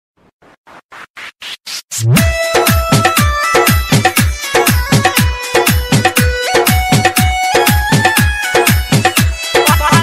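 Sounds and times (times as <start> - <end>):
song beat: 0.9 - 10.0.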